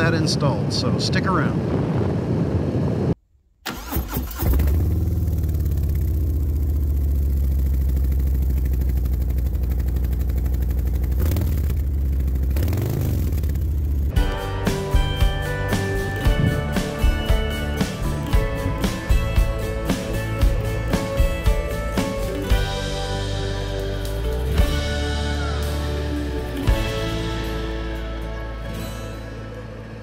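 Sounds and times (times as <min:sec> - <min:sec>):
motorcycle throttle blips: 0:04.5 - 0:14.2
motorcycle engine idling: 0:04.6 - 0:14.2
guitar music: 0:14.1 - 0:30.0.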